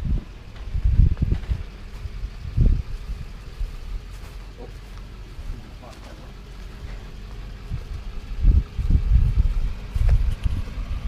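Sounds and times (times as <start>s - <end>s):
wind buffeting microphone: 0.0s - 4.2s, 6.7s - 11.0s
road traffic noise: 0.0s - 11.0s.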